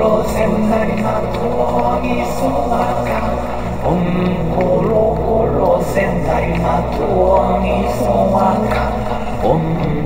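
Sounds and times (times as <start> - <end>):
layered looped voice parts: 0.0 - 10.0
low vocal drone: 0.0 - 10.0.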